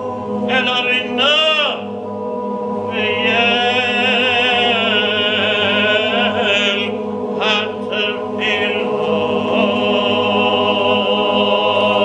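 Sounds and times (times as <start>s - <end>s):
men's voices holding a chord: 0.0s - 12.0s
man chanting prayer: 0.5s - 1.9s, 2.9s - 10.2s.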